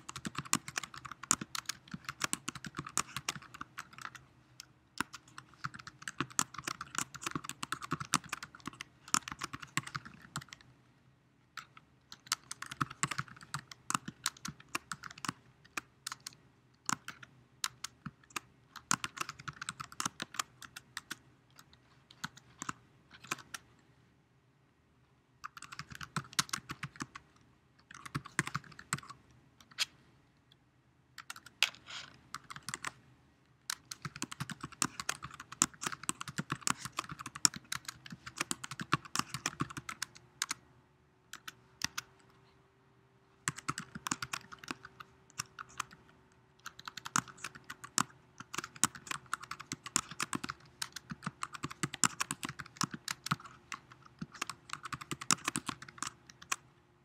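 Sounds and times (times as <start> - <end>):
typing on computer keyboard: 0.0 - 10.7, 11.6 - 23.7, 25.4 - 29.2, 31.2 - 33.0, 33.7 - 40.6, 41.3 - 42.1, 43.4 - 46.0, 46.6 - 56.6.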